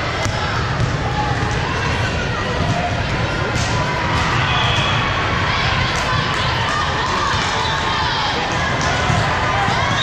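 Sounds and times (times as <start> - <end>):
many voices chattering: 0.0 - 10.0.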